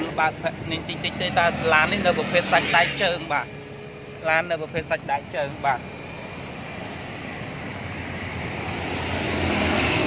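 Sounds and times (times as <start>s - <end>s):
road vehicle going by: 0.0s - 10.0s.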